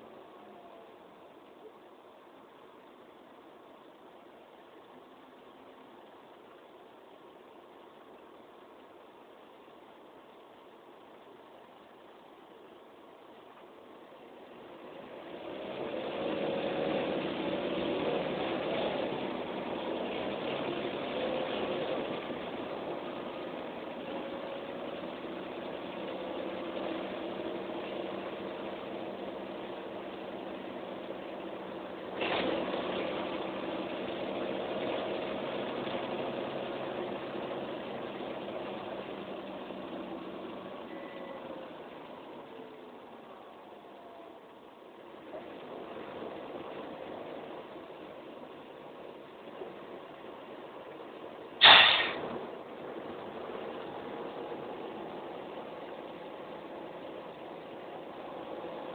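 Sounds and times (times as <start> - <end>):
bus diesel engine: 0.0 - 58.9
road noise: 0.0 - 58.9
sharp knock: 51.6 - 52.2.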